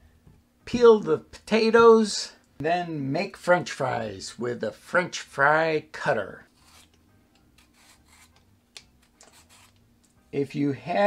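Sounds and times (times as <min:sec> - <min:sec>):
peeler scraping potato skin: 0:06.5 - 0:07.0, 0:07.6 - 0:09.8.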